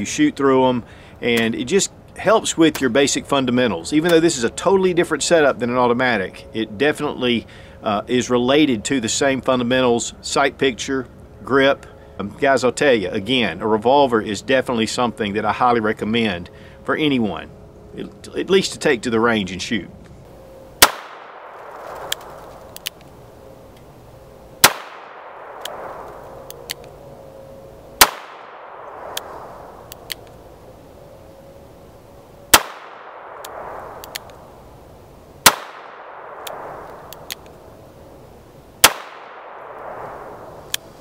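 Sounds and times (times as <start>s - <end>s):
revolver shots with echo: 24.6s - 26.1s, 28.0s - 29.5s, 32.5s - 34.0s, 35.4s - 37.1s, 38.8s - 40.6s
faint clicks: 33.4s - 34.4s.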